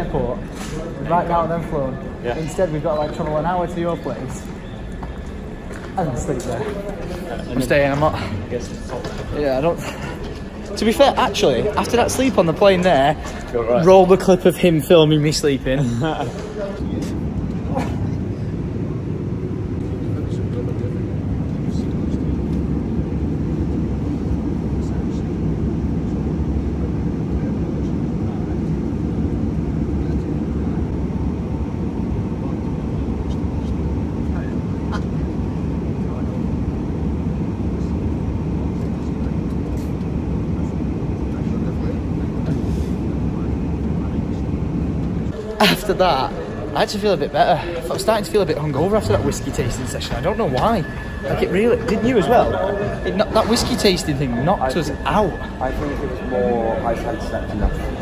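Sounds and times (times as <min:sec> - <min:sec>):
airliner cabin drone: 0:00.0 - 0:58.0.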